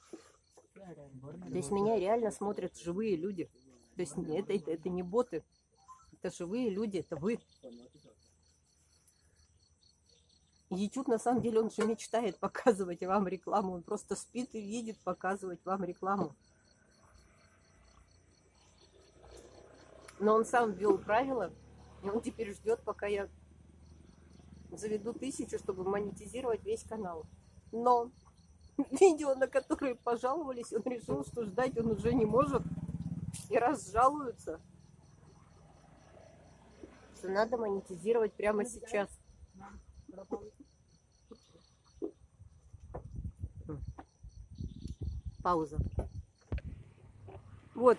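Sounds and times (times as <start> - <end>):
high-pitched insect trill: 0.0 - 46.6
crickets chirping: 0.0 - 47.9.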